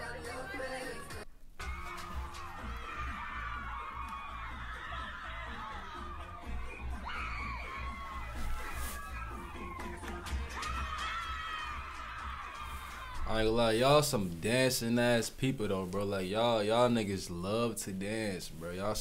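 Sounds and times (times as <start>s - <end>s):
music with steady bass line: 0.0s - 13.1s
crowd cheering and shouting: 0.0s - 13.6s.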